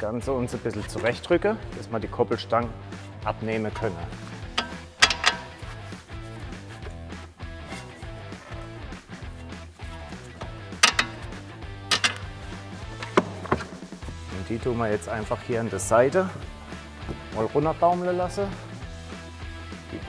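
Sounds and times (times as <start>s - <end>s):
background music: 0.0s - 20.0s
sharp metal knocks and clinks: 4.5s - 5.6s, 10.8s - 11.3s, 11.9s - 12.4s.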